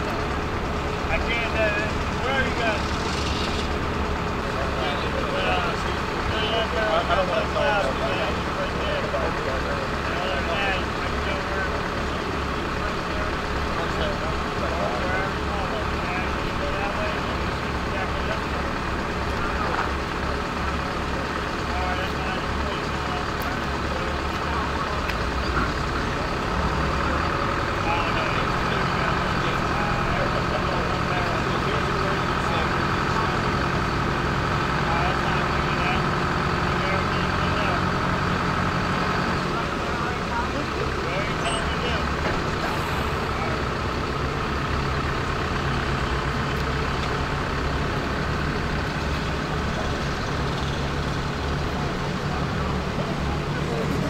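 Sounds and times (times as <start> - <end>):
crane engine running: 0.0 - 54.0.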